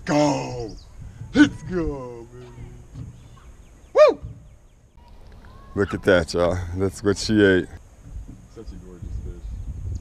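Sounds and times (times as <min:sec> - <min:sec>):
man whooping: 0:03.9 - 0:04.3.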